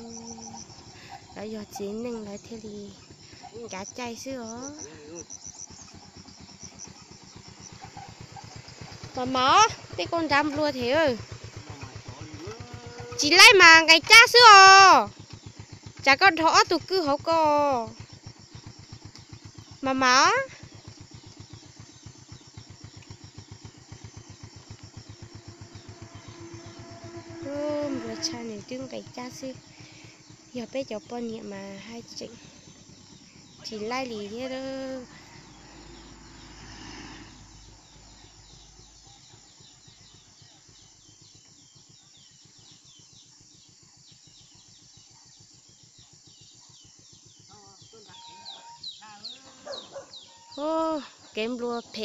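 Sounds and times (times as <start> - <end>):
forest ambience: 0.0 - 52.0
motorcycle engine running: 0.0 - 52.0
louder pitched calls: 25.0 - 31.0, 47.5 - 52.0.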